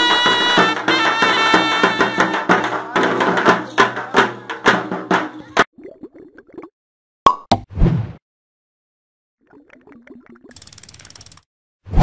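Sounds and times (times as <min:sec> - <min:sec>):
bubbly blips: 0:05.7 - 0:06.7, 0:09.4 - 0:10.6
rapid ratcheting clicks: 0:10.5 - 0:11.5.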